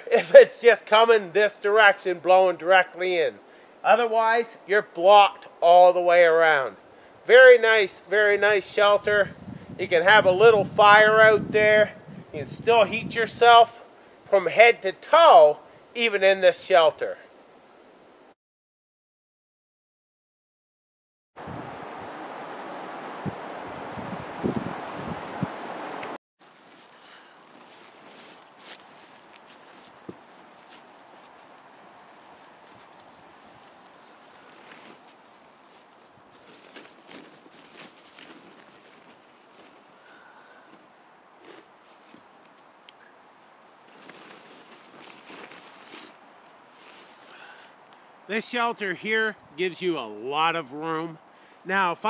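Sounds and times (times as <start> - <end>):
forest ambience: 0.0 - 9.6, 25.6 - 52.0
rustling dry leaves and tarp: 26.4 - 48.2.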